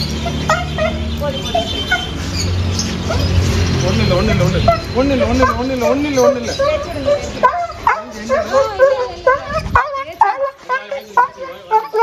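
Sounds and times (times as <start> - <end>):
dog whining and yipping: 0.0 - 3.6, 4.4 - 12.0.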